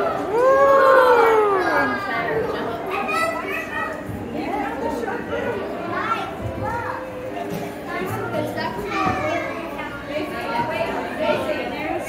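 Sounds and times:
background chatter: 0.0 - 12.0
children's voices: 0.0 - 12.0.

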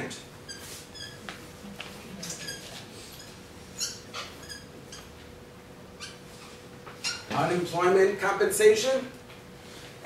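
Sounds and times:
marker squeaking on whiteboard: 0.4 - 1.4, 2.2 - 5.2, 6.0 - 7.4.

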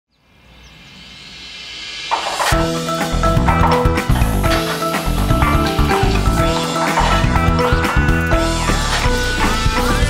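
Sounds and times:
high bird chirps: 0.1 - 1.6
steady outdoor hiss: 0.1 - 5.4.

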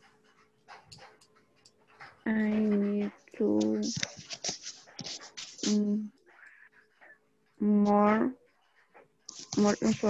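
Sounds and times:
soft faint noises: 0.0 - 10.0.

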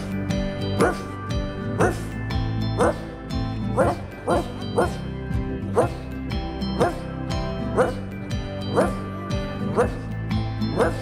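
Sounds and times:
dog barking: 0.8 - 1.1, 1.8 - 2.1, 2.8 - 3.1, 3.8 - 5.0, 5.7 - 6.0, 6.8 - 7.1, 7.8 - 8.0, 8.7 - 9.0, 9.7 - 10.0, 10.7 - 11.0.

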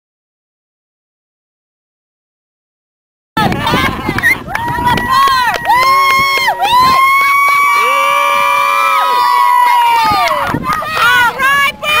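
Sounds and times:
children shouting a cheer: 3.4 - 12.0.

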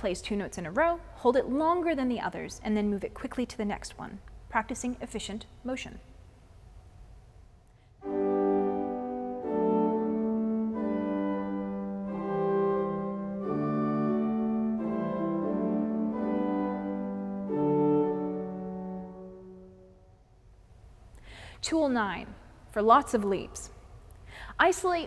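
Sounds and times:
pipe organ sustained chords: 8.0 - 20.1.

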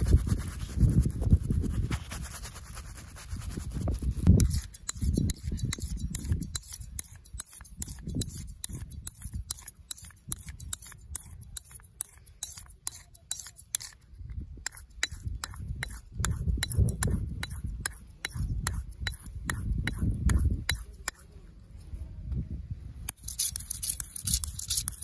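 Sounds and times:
razor scraping on sharpening stone: 4.2 - 21.4, 23.1 - 25.0.

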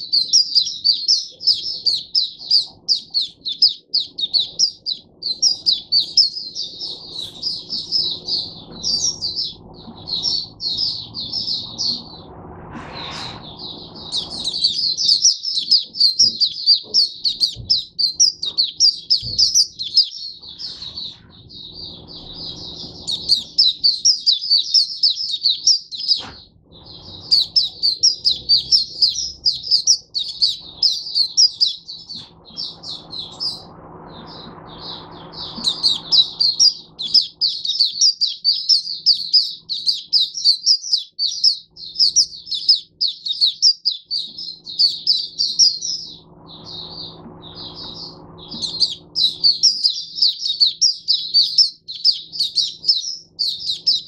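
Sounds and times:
bird twittering song: 0.0 - 54.0.

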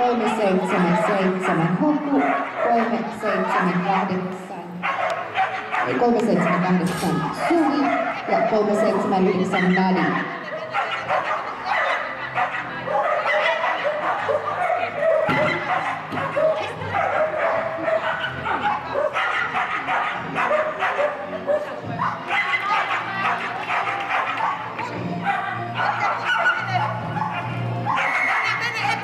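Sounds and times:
background music: 0.0 - 29.0
dog barking: 0.4 - 29.0.

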